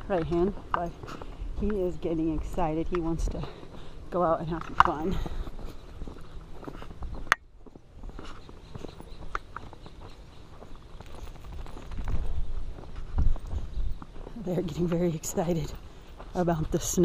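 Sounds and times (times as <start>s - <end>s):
footsteps in snow: 0.0s - 17.0s.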